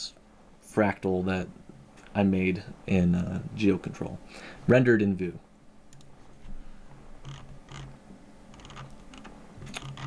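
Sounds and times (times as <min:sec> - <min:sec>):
computer mouse clicking: 0:05.9 - 0:06.1, 0:07.2 - 0:10.0.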